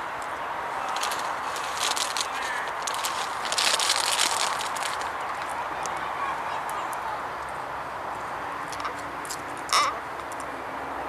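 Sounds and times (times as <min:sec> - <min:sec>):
open-air background noise: 0:00.0 - 0:11.0.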